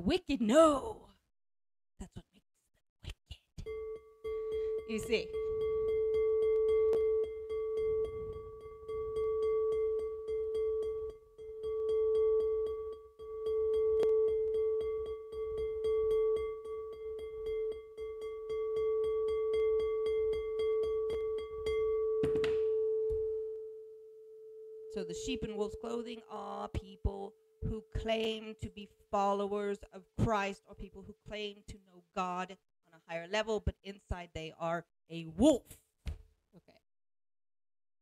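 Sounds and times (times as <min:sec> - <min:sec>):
singing bowl ringing: 0:03.7 - 0:26.6.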